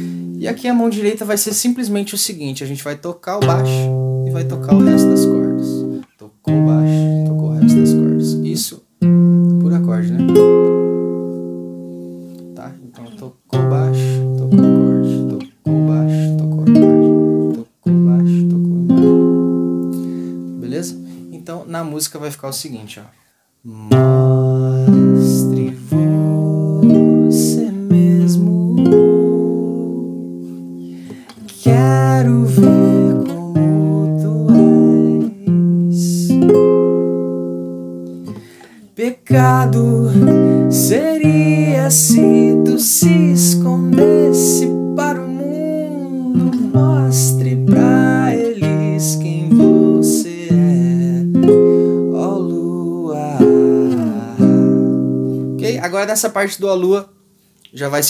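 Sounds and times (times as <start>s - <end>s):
person singing: 0.0s - 0.7s, 3.4s - 8.6s, 11.8s - 17.3s, 17.9s - 19.0s, 23.7s - 36.7s, 38.3s - 55.8s
classical guitar chords: 0.0s - 1.6s, 3.3s - 22.2s, 23.8s - 57.0s.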